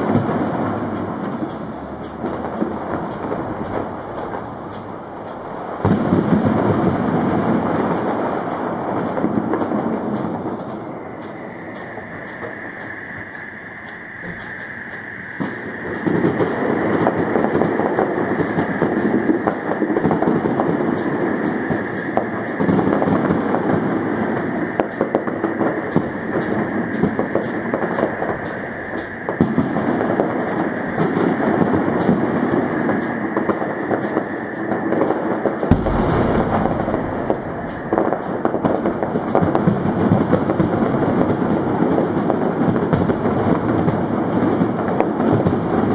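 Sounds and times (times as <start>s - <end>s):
fireworks bangs and crackles: 0.0s - 45.9s
noisy background: 32.0s - 39.6s.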